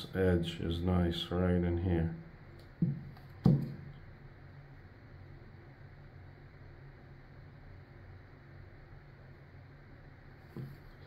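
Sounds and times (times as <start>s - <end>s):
low room tone hum: 0.0s - 11.0s
sharp knock on hard surface: 2.8s - 3.8s.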